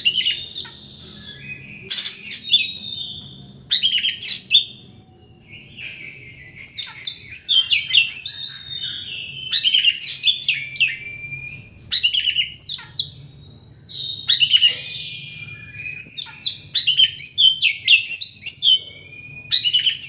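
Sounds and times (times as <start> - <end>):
bird singing whistles: 0.0 - 20.0.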